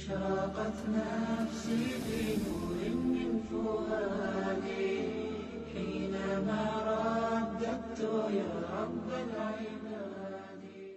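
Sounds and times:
melodic vocal chanting: 0.0s - 10.9s.

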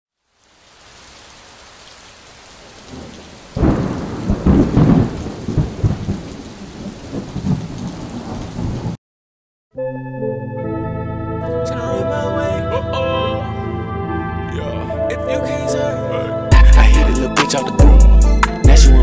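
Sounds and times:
steady rain: 0.1s - 9.0s
loud rolling thunder: 2.9s - 9.0s.

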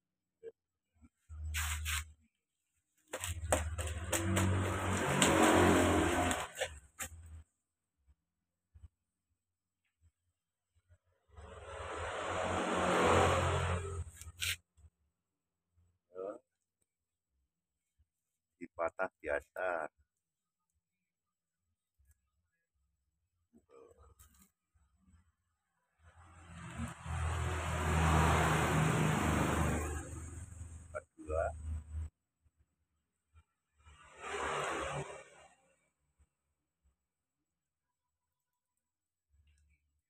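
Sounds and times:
vehicle engine passing by: 3.2s - 6.8s, 11.4s - 14.3s, 26.0s - 31.0s.

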